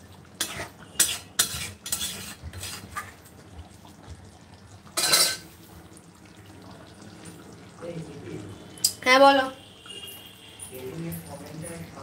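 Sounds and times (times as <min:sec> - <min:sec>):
metal spatula scraping metal pan: 0:00.4 - 0:03.2, 0:05.0 - 0:05.4.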